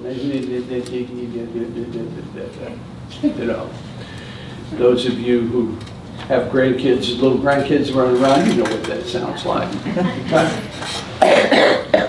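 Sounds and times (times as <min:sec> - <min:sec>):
man coughing: 0:11.2 - 0:12.0.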